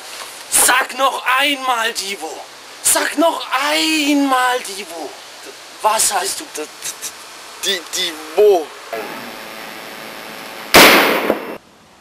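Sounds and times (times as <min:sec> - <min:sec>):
pistol shot: 0:10.7 - 0:11.6.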